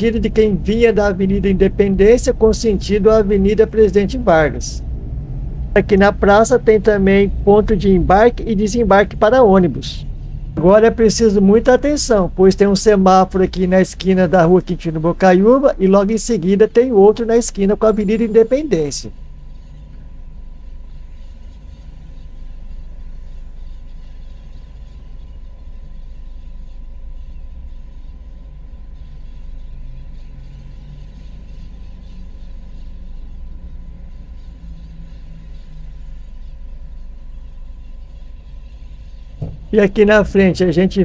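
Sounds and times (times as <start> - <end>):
car engine and tyres rumbling: 0.0 - 26.4, 27.2 - 41.0.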